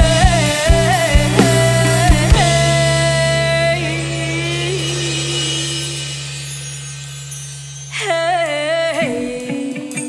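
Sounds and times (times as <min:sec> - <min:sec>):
steady low note: 0:00.1 - 0:07.7
held pitched note: 0:00.8 - 0:09.5.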